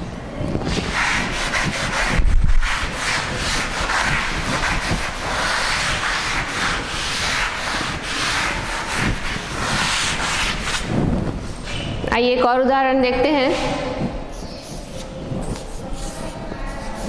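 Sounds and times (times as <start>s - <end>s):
scratchy rubbing on writing surface: 0.7s - 10.9s, 14.3s - 17.0s.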